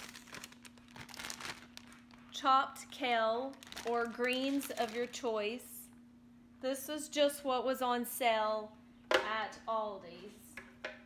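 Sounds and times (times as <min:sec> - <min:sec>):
plastic bag crinkling: 0:00.0 - 0:05.6
faint steady hum: 0:00.0 - 0:11.0.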